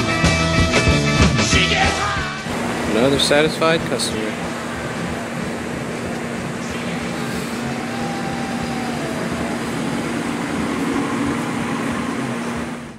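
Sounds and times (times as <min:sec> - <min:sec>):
outdoor noise: 0:02.4 - 0:12.9
car engine driving away: 0:02.5 - 0:12.9.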